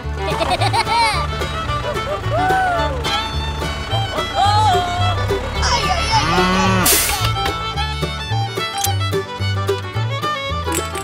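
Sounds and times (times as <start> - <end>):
upbeat fiddle music: 0.0 - 11.0
cow mooing: 5.6 - 7.2.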